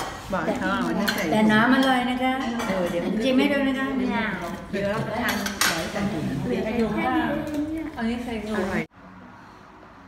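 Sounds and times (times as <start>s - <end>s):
cutlery clinking on plates: 0.0s - 3.2s, 5.0s - 6.1s.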